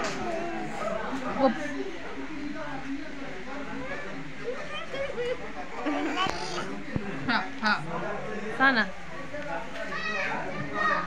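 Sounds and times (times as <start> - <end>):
infant cooing and babbling: 5.7 - 6.8.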